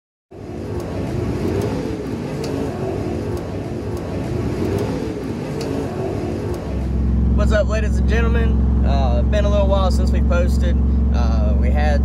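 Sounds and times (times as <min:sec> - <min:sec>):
race car engines passing: 0:00.3 - 0:12.0
sharp ticks: 0:00.7 - 0:02.6, 0:03.3 - 0:05.0.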